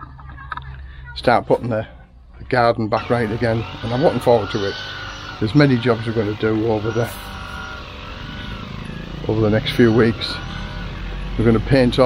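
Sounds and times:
string trimmer cutting grass: 3.0 - 12.0.

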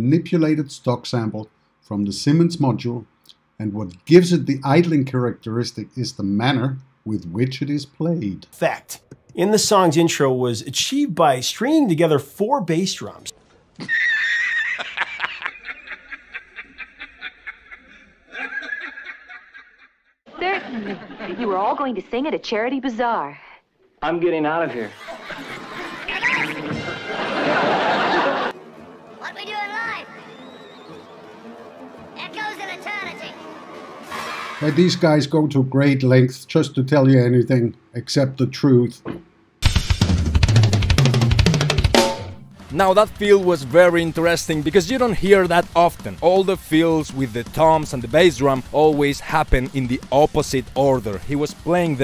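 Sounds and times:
man laughing wheezily: 13.8 - 19.4
drum fill on toms and bass drum: 39.1 - 52.0.

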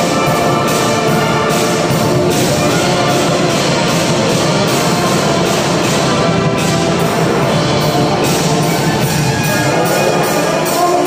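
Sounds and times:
marching brass band playing: 0.0 - 11.0.

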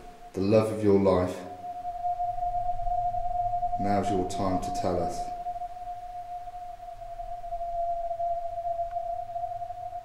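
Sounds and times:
faint low hum: 0.0 - 10.0
steady electronic tone: 0.0 - 10.0.

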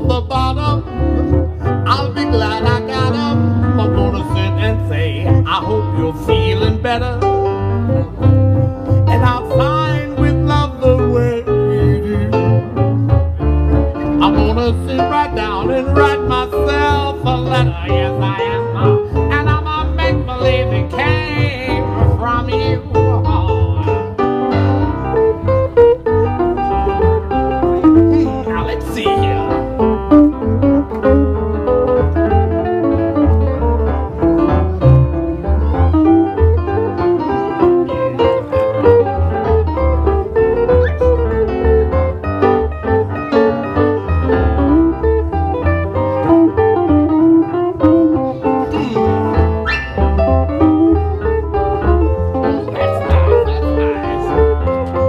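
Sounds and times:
swing band playing: 0.0 - 55.0.

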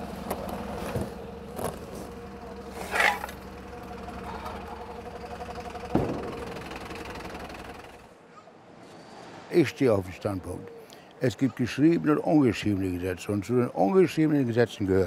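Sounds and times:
truck engine idling: 0.0 - 8.2
sharp thump: 5.9 - 6.7.

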